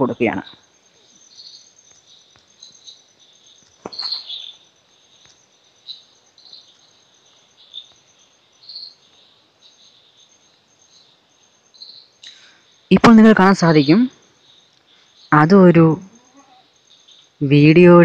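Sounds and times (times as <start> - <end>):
insect chirping trill: 0.0 - 18.0.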